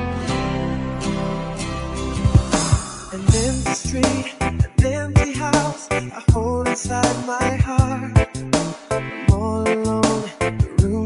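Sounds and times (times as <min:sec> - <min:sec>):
gentle acoustic guitar music: 0:00.0 - 0:04.2.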